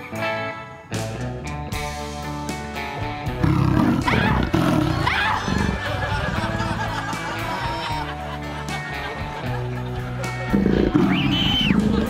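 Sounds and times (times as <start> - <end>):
light comedy background music: 0.0 - 12.0
rough gorilla roar: 3.4 - 6.8, 10.4 - 12.0.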